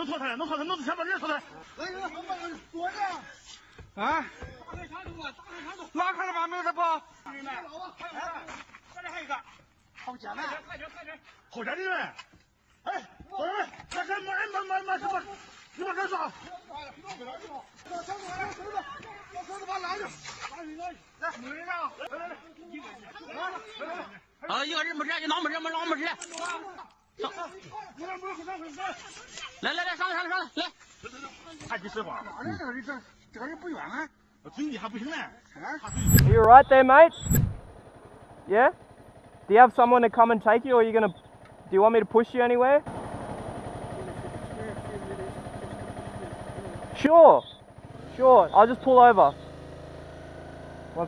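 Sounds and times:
motorcycle engine idling: 37.6s - 51.0s.

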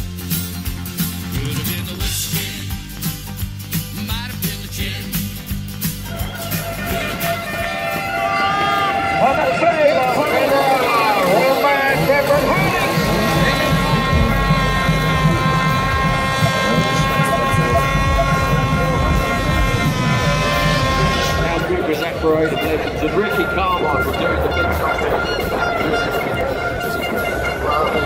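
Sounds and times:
crowd voices: 4.0s - 28.0s
motorcycle engines revving: 5.8s - 28.0s.

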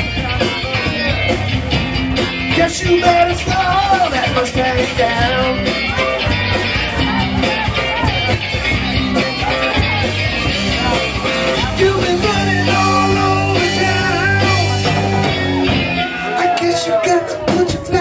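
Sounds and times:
bass guitar: 0.0s - 18.0s
drum kit: 0.0s - 18.0s
electric guitar: 0.0s - 18.0s.

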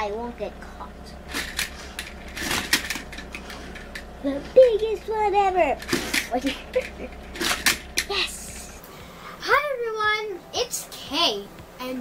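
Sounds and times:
plastic toy clicking and rattling: 1.3s - 4.0s, 5.8s - 8.1s.

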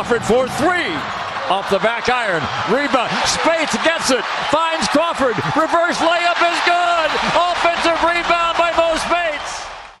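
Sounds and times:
male sports commentator: 0.0s - 9.7s.

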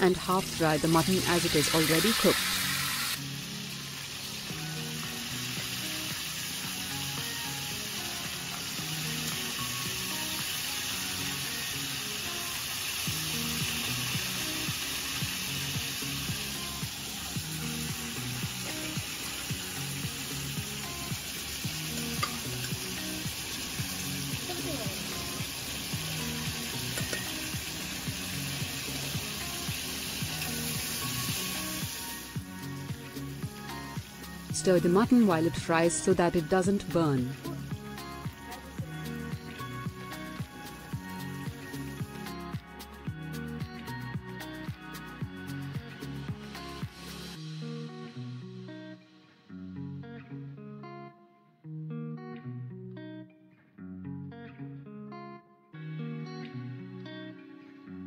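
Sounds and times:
soft background music: 0.0s - 51.6s
meat sizzling in oil: 0.1s - 35.7s.

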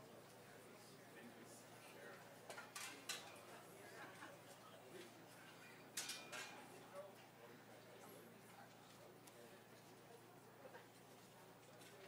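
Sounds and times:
faint sharp clinks: 5.8s - 6.7s.

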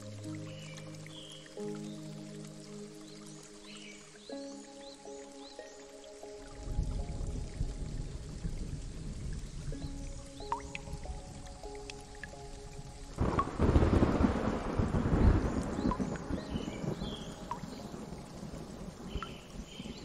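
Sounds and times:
soft ambient music: 0.0s - 20.0s
steady rain: 0.0s - 20.0s
water dripping: 0.0s - 20.0s
thunder rumbling: 13.2s - 20.0s.

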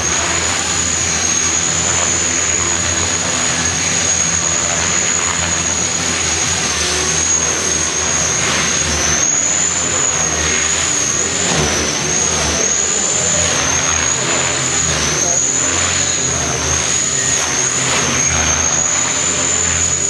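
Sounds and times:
high-pitched electric motor whine: 0.0s - 20.0s.

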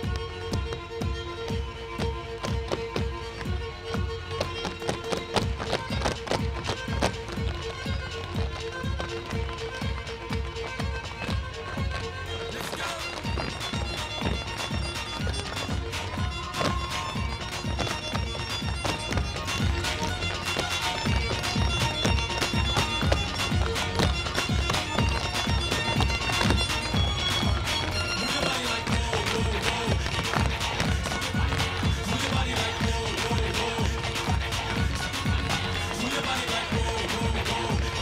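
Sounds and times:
recorded dance music: 0.0s - 38.0s
tap shoes clicking on wooden stage: 0.0s - 38.0s.

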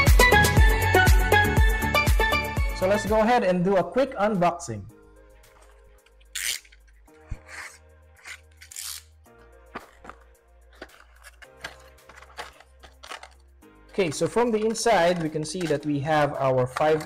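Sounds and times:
quiet background music: 0.0s - 17.0s.

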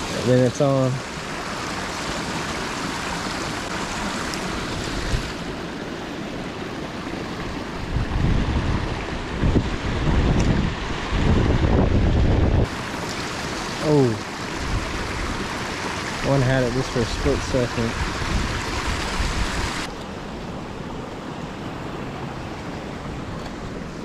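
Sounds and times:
creek water running over rocks: 0.0s - 20.2s
wind rumbling on microphone: 4.6s - 5.5s, 7.2s - 13.8s, 14.5s - 15.7s, 16.8s - 20.7s.

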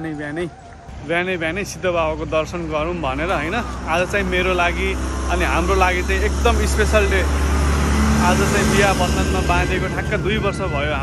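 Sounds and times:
man talking: 0.0s - 11.0s
truck engine rumbling: 0.0s - 11.0s.

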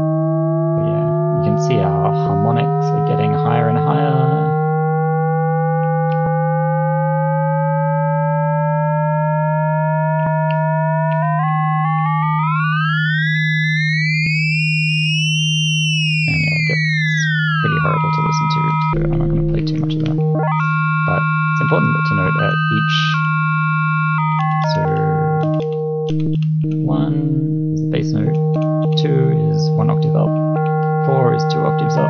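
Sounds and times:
synth low note with sweeping overtones: 0.0s - 32.0s.

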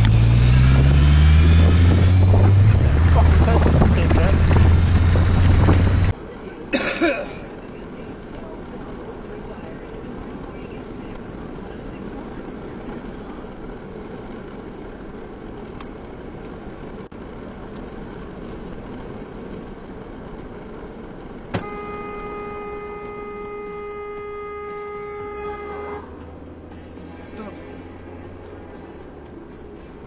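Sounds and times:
car road and engine noise: 0.0s - 30.0s.

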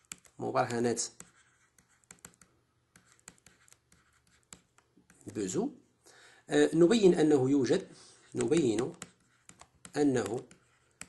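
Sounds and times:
pen scratching on paper: 0.0s - 5.4s, 8.2s - 11.0s.

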